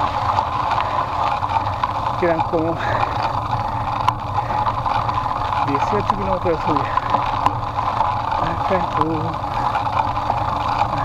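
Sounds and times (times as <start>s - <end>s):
tyres rolling on tarmac: 0.0s - 11.0s.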